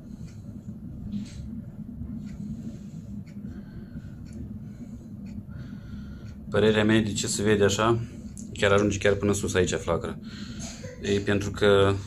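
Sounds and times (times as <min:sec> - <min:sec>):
faint ticks: 0:00.1 - 0:06.4.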